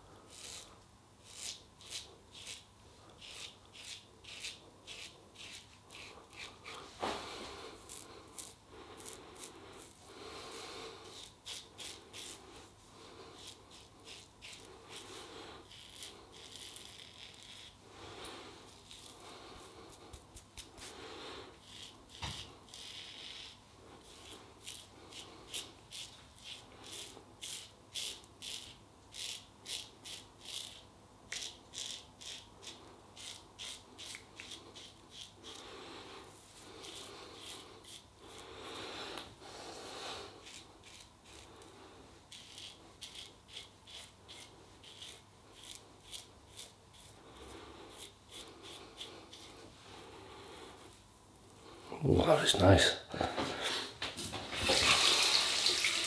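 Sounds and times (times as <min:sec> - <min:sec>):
razor scraping through stubble: 0:00.2 - 0:12.6, 0:13.3 - 0:17.8, 0:18.7 - 0:20.9, 0:21.6 - 0:35.6, 0:36.2 - 0:38.8, 0:40.1 - 0:49.8.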